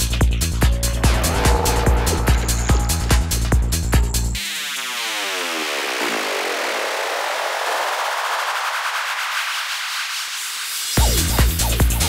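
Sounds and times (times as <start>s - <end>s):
falling pitched tones: 0.8s - 6.1s
kick drum and bassline: 11.0s - 12.0s.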